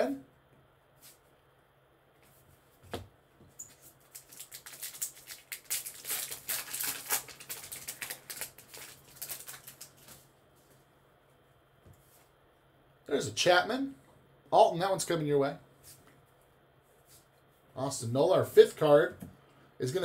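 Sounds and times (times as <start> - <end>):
wrapper crinkling: 3.7 - 10.3.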